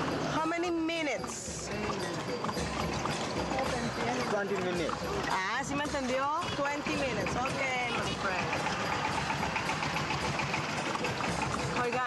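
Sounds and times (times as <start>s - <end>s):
hoofbeats clip-clopping: 0.0s - 12.0s.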